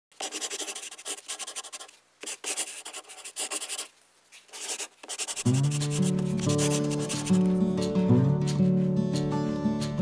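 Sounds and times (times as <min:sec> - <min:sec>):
pen drawing on paper: 0:00.2 - 0:03.9, 0:04.5 - 0:07.4.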